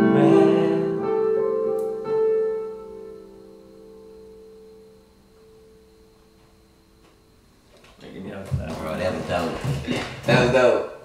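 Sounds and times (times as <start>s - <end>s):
electronic keyboard piano chord: 0.0s - 7.4s.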